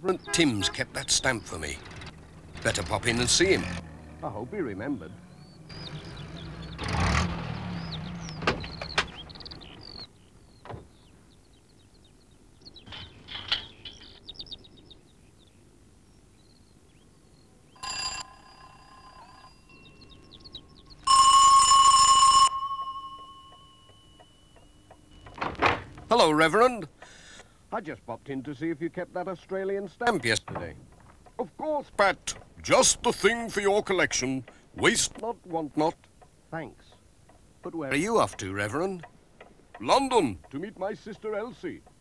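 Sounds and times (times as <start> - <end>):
birds chirping: 0.0 - 21.9, 22.5 - 42.0
van engine running: 0.9 - 11.1
electric doorbell ringing: 17.8 - 20.3, 21.0 - 25.6.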